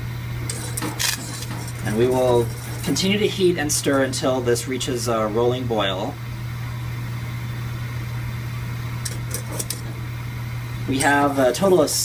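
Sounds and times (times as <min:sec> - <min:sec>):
gas burner running: 0:00.0 - 0:12.0
low background hum: 0:00.0 - 0:12.0.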